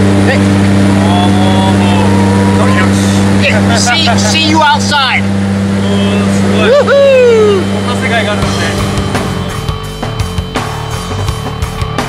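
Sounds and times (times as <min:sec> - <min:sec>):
plane engines droning: 0:00.0 - 0:11.8
person shouting: 0:01.0 - 0:03.4, 0:06.5 - 0:07.8.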